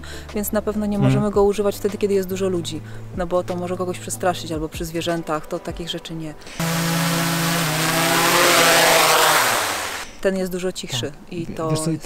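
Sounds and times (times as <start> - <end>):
drone propellers buzzing: 6.6 - 10.1
rushing hiss of rotor wash: 6.6 - 10.2.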